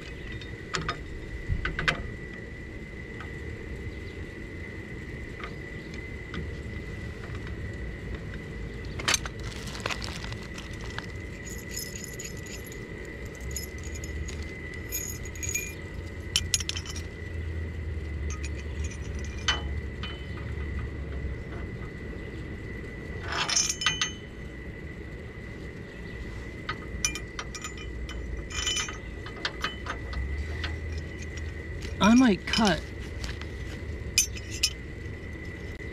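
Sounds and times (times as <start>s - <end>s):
metal brackets and bolts clinking: 9.0s - 17.1s, 18.3s - 20.5s, 23.3s - 24.3s, 27.0s - 32.8s, 34.1s - 34.8s.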